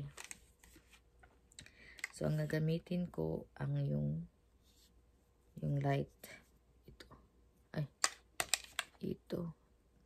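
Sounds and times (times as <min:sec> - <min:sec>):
makeup palette clicks and taps: 0:08.0 - 0:08.9.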